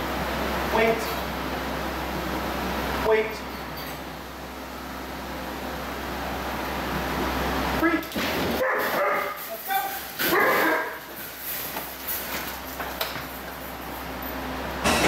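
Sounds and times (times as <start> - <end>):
room hum: 0.0 - 15.0
dog yipping and whining: 8.6 - 11.0.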